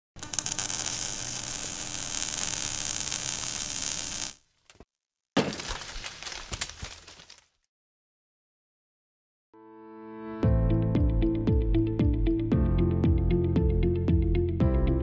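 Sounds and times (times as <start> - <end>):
dense crackling noise: 0.2 - 4.4.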